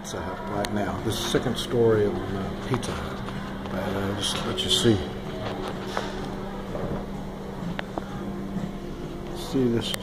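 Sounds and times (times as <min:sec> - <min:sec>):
room ventilation hum: 0:00.0 - 0:10.0.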